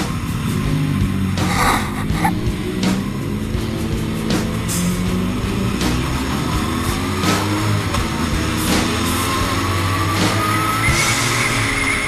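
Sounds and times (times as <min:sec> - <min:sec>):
motorcycle engine whining: 0:00.0 - 0:12.0.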